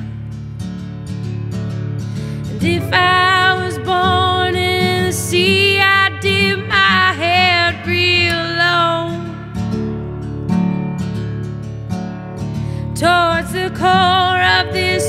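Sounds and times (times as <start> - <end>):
woman singing: 2.5 - 9.5, 12.9 - 15.0.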